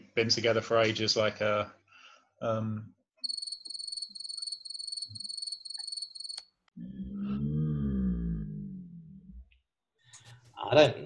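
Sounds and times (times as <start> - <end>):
cricket chirping: 3.2 - 6.5.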